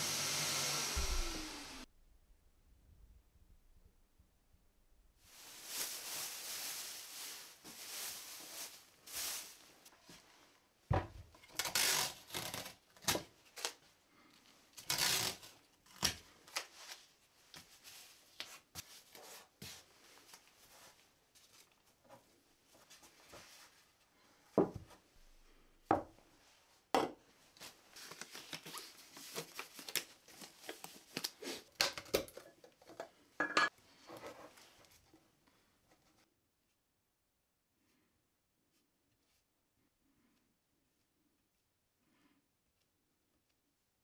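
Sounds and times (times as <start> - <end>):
plastic sheet rustling: 5.3 - 10.0
tape pulled and torn: 11.4 - 13.8, 14.8 - 16.7.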